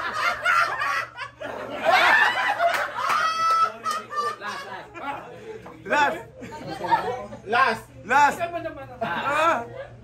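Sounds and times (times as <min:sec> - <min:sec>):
people laughing: 0:00.0 - 0:07.8, 0:08.9 - 0:10.0.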